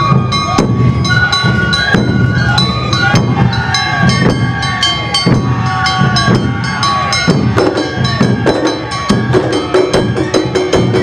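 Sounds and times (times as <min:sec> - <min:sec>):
bamboo flute long notes: 0:00.0 - 0:11.0
drums: 0:00.0 - 0:11.0.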